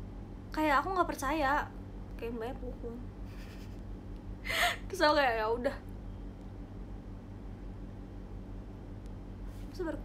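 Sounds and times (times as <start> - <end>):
faint low hum: 0.0 - 10.0
woman talking: 0.6 - 3.1, 4.6 - 5.8, 9.7 - 10.0
woman gasping in-breath: 4.4 - 4.9.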